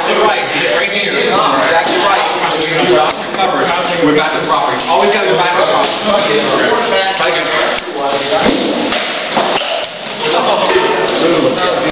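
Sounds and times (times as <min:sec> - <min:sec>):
voices talking in echoing hall: 0:00.0 - 0:11.9.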